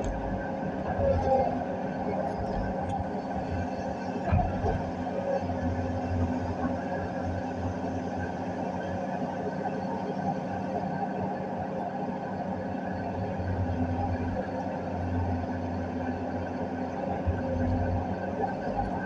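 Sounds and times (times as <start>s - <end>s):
excavator engine and hydraulics: 0.0s - 19.0s.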